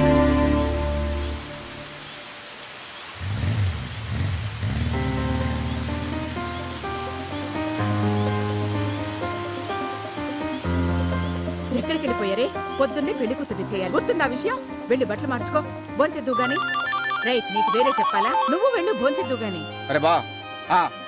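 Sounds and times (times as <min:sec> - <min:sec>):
heavy rain falling: 0:00.0 - 0:19.8
sustained film score notes: 0:04.8 - 0:21.0.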